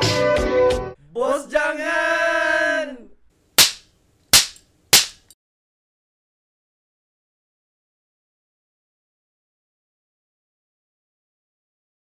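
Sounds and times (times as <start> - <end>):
sharp hits: 3.6 - 3.8, 4.4 - 5.3.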